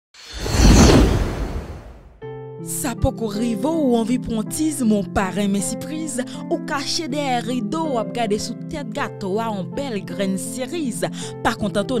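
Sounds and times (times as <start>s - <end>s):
whoosh with deep rumble: 0.2s - 2.1s.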